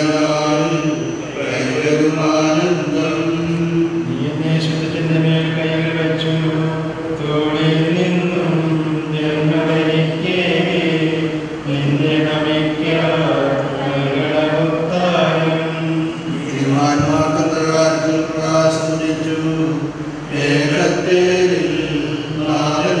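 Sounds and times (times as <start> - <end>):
men chanting a hymn: 0.0 - 23.0.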